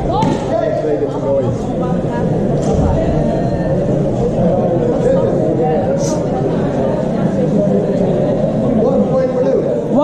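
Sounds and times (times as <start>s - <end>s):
overlapping voices in echoing hall: 0.0s - 10.0s.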